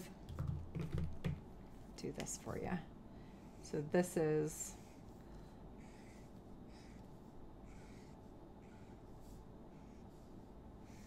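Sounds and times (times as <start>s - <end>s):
pencil clicks and taps: 0.3s - 1.4s.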